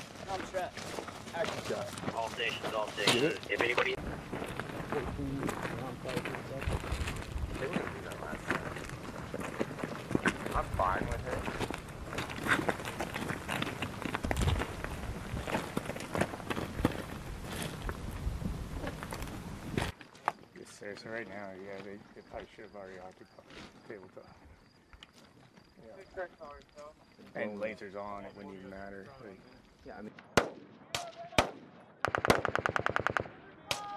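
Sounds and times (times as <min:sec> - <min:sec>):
troops moving with gear: 0:00.0 - 0:20.5.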